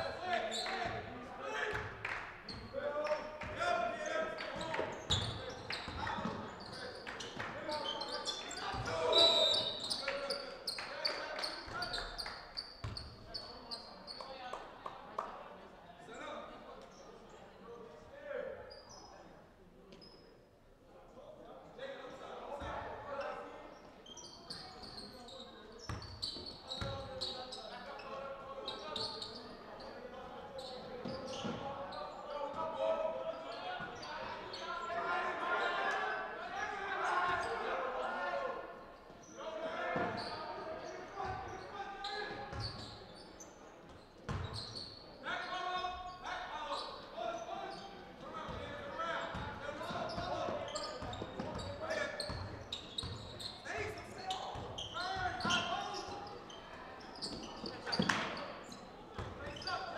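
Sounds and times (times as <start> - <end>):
voices and calls echoing: 0.0 - 59.9.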